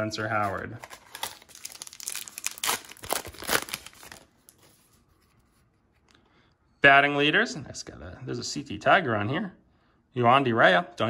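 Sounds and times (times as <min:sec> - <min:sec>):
wrapper being torn and crinkled: 0:00.2 - 0:04.8.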